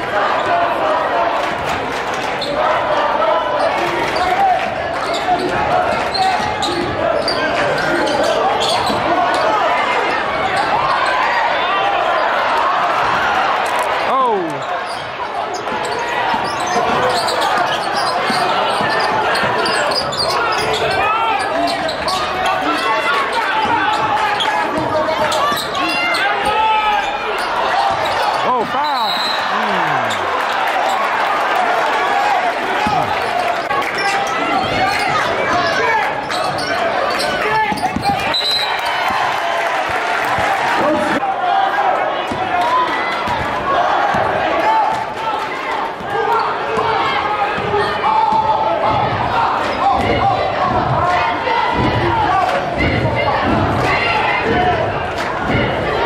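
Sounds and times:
crowd voices and shouts: 0:00.0 - 0:56.0
referee's whistle: 0:28.8 - 0:30.2, 0:37.7 - 0:39.0.

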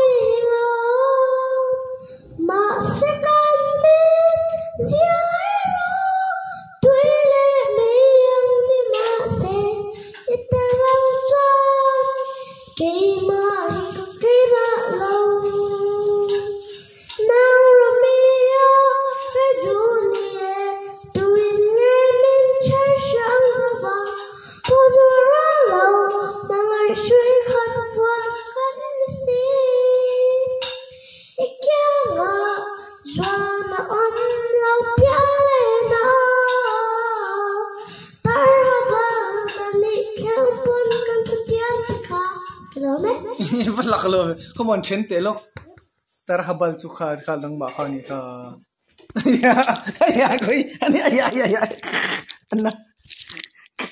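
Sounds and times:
girl singing into microphone: 0:00.0 - 0:43.7.

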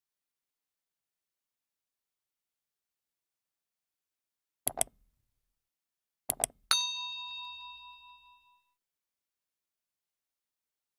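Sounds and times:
mouse double click: 0:04.7 - 0:05.0, 0:06.3 - 0:06.6
bright bell ding: 0:06.7 - 0:08.7.

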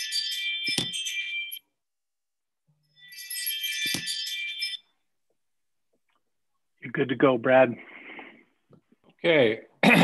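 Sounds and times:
jingling bell-like chime: 0:02.9 - 0:04.9.

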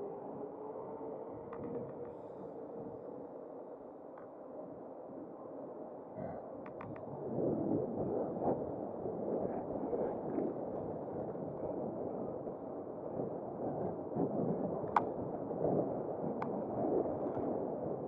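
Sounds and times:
wind rushing over microphone: 0:06.2 - 0:18.0.

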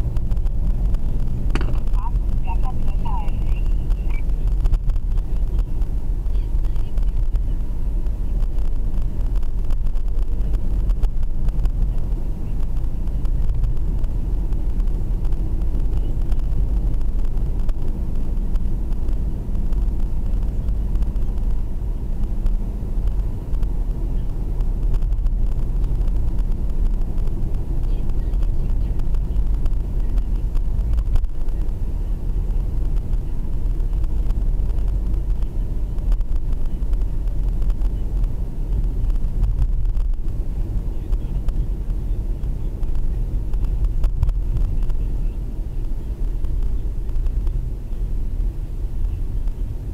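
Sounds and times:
car engine and road noise: 0:00.0 - 0:49.9.

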